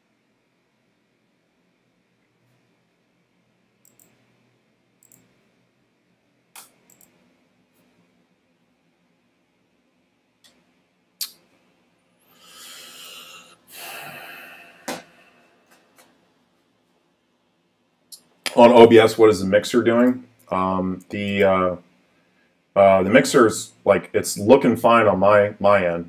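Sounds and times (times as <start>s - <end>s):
sharp clicks: 3.8s - 4.2s, 5.0s - 5.3s, 6.5s - 7.2s
person exhaling: 12.2s - 15.7s.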